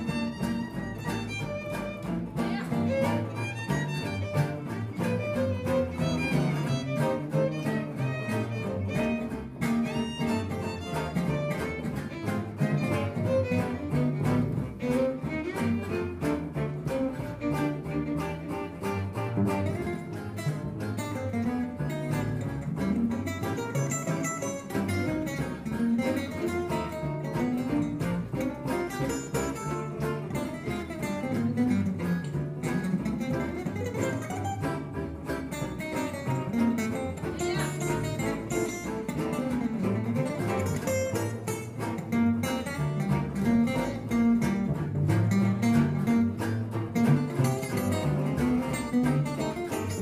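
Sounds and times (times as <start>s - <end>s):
acoustic guitars strumming: 0.0s - 50.0s
double bass: 0.0s - 50.0s
violin: 0.0s - 50.0s.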